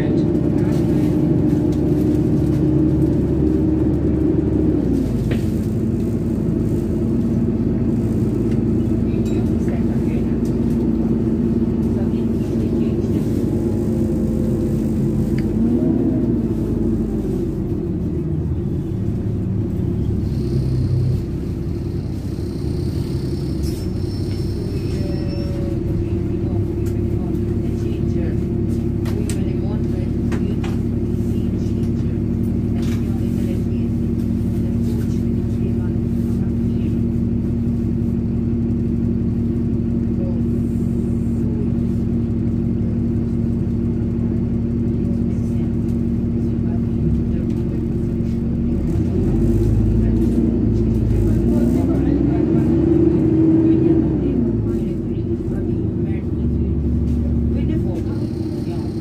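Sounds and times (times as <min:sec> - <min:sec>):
bus engine droning: 0:00.0 - 0:59.0.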